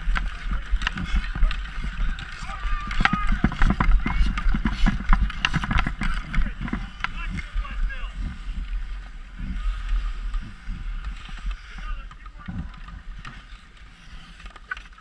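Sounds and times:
wind rumble on microphone: 0.0s - 14.5s
skates scraping over ice: 0.0s - 15.0s.

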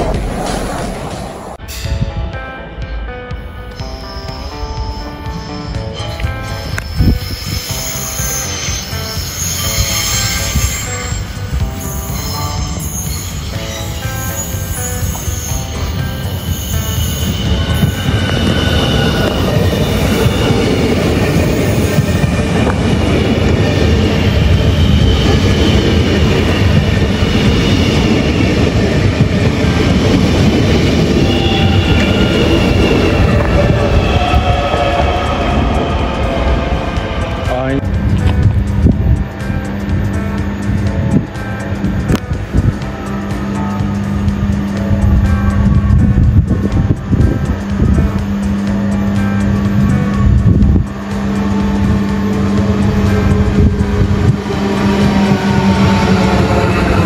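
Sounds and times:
train running gear rumble: 0.0s - 2.5s, 4.8s - 57.0s
high wheel squeal: 3.7s - 29.2s, 29.8s - 37.8s, 49.6s - 57.0s.

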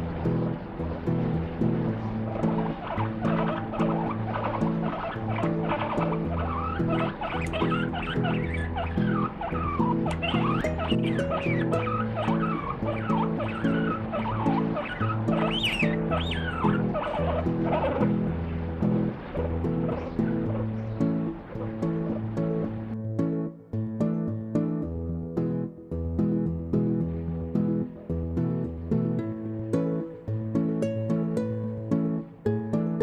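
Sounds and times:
background music chords: 0.0s - 33.0s
guinea pig squealing: 2.3s - 18.3s, 18.9s - 20.8s.

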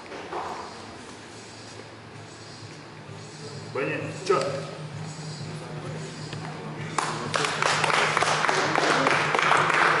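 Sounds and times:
crowd clapping: 6.9s - 10.0s.

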